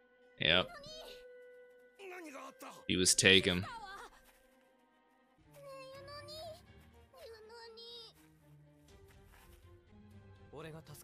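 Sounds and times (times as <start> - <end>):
child's high drawn-out voice: 0.7 - 1.2, 5.6 - 6.6, 7.2 - 8.2.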